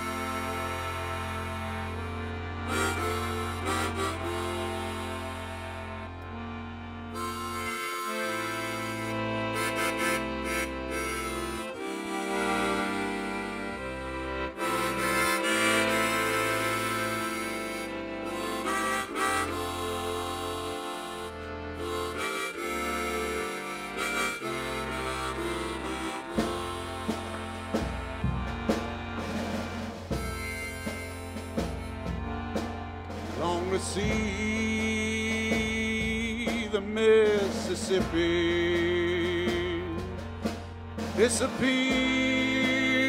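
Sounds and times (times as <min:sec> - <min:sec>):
accordion reed chords: 0:00.0 - 0:43.0.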